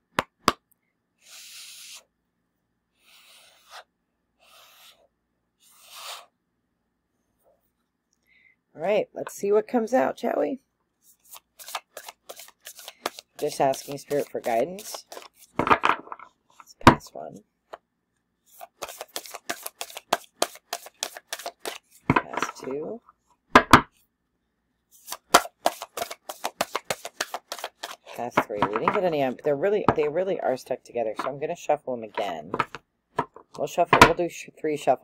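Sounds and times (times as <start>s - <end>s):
cards being shuffled: 11.1s - 15.9s, 18.5s - 22.8s, 25.0s - 29.4s.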